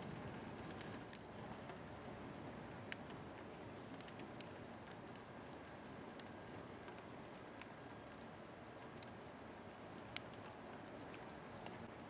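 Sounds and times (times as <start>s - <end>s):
steady rain: 0.0s - 12.0s.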